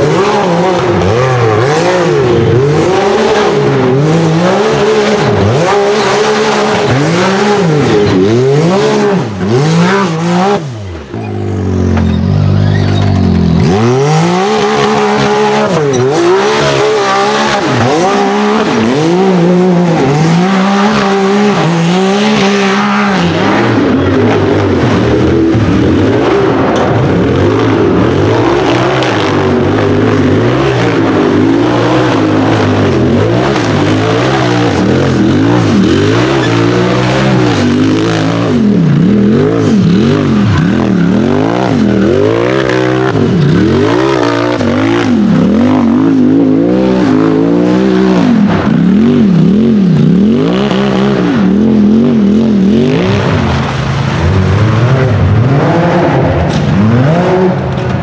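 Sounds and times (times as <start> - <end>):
engines revving: 0.0 - 58.0.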